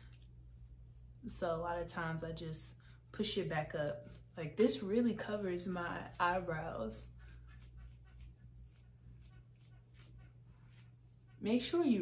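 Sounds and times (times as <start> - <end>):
comb raking through wig hair: 3.6 - 12.0.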